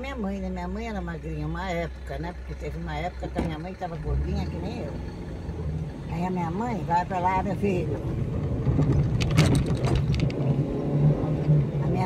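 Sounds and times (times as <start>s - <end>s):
car engine hum: 0.0s - 12.0s
road noise: 0.0s - 12.0s.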